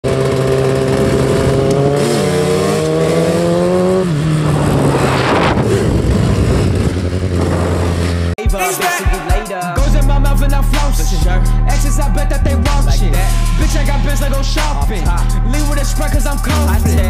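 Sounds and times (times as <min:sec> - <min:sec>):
motorcycle engine at high revs: 0:00.0 - 0:08.4.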